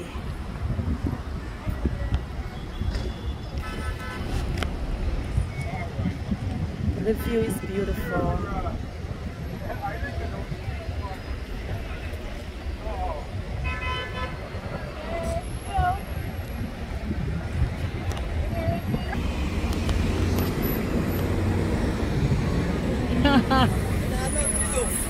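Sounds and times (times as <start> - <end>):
people's voices: 0.0 - 25.0
vehicle horn toot: 2.6 - 4.3, 13.6 - 14.4
engine rumble: 14.5 - 25.0.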